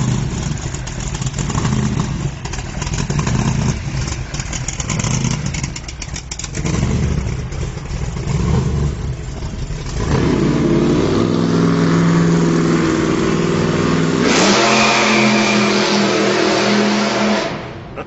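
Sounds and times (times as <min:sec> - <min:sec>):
hot rod engine rumbling: 0:00.0 - 0:18.0.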